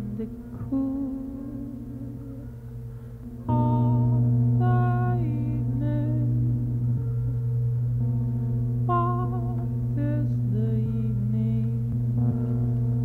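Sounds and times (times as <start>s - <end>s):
wavering pitched tones: 0.0s - 13.0s
electronic drone music: 1.3s - 13.0s.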